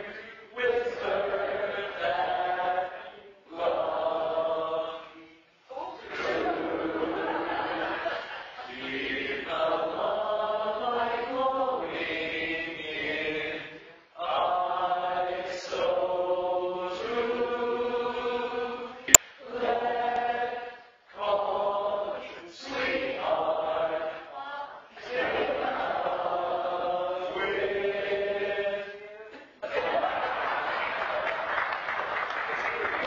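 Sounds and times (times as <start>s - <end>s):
men singing in harmony: 0.0s - 5.2s.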